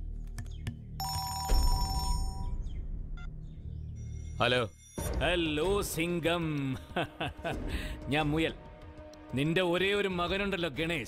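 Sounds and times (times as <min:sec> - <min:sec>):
mobile phone ringing: 0:01.0 - 0:02.5.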